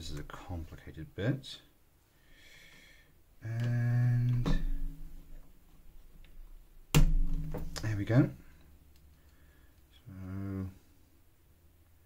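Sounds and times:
man humming: 3.4 - 4.8, 10.0 - 10.8.

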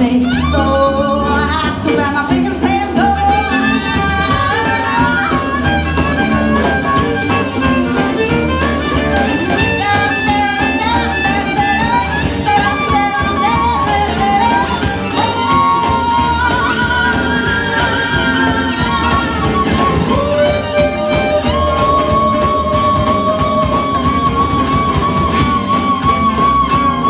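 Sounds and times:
drums: 0.0 - 27.0
electric bass: 0.0 - 27.0
violin lead melody: 0.0 - 27.0.

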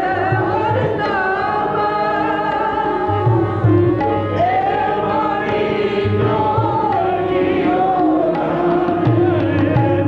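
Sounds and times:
voices singing devotional melody: 0.0 - 10.0
tabla strokes: 2.3 - 10.0.

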